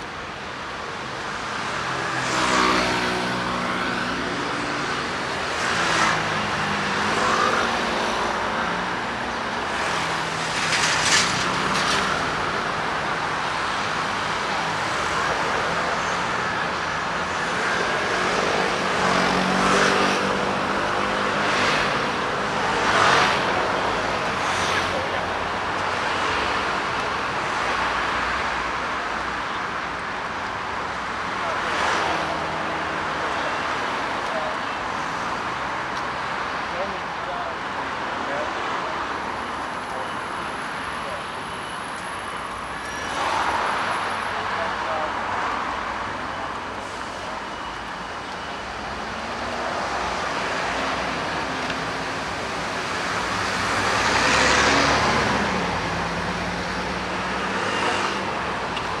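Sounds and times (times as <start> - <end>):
road noise: 0.0 - 59.0
cars and scooters driving past: 1.6 - 28.7, 38.2 - 59.0.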